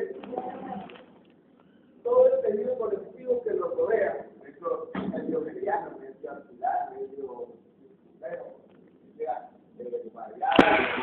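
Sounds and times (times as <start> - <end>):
man's voice: 2.0 - 7.5.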